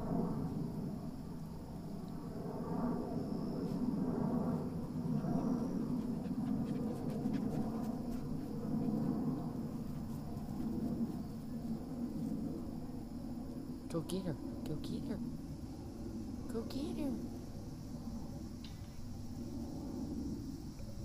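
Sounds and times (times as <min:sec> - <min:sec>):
puppy panting: 0:05.3 - 0:10.8.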